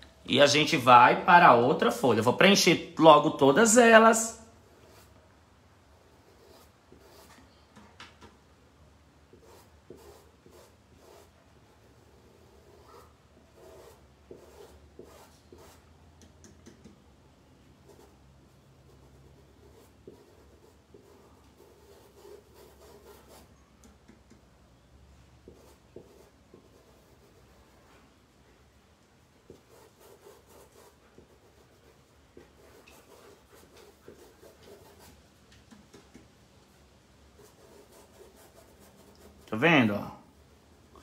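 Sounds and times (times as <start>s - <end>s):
paintbrush scratching on fabric: 9.3s - 15.9s, 29.5s - 35.2s, 37.3s - 39.5s.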